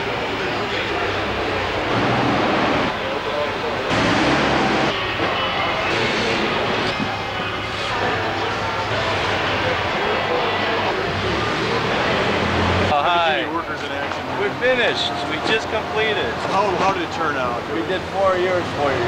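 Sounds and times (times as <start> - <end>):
machine drone: 0.0 - 13.0
indistinct voices of many people: 0.0 - 19.0.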